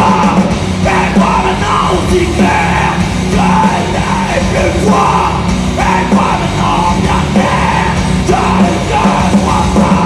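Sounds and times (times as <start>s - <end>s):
metal band playing: 0.0s - 10.0s
shouted vocals: 0.0s - 10.0s.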